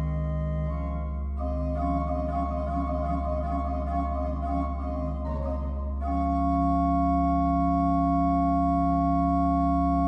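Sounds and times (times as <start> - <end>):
pipe organ chord: 0.0 - 10.0.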